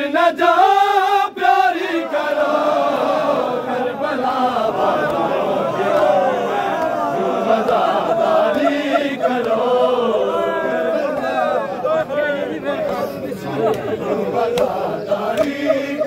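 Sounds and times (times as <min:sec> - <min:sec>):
crowd of men chanting: 0:00.0 - 0:16.0.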